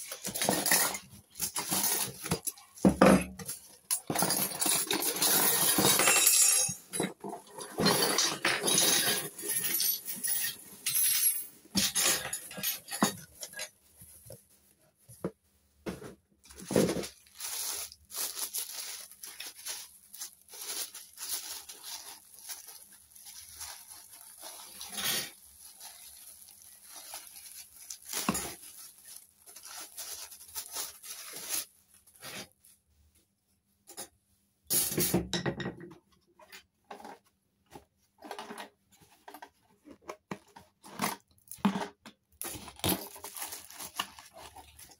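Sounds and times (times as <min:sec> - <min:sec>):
cardboard and plastic rustling: 0:00.0 - 0:06.2, 0:11.6 - 0:32.8, 0:36.9 - 0:44.9.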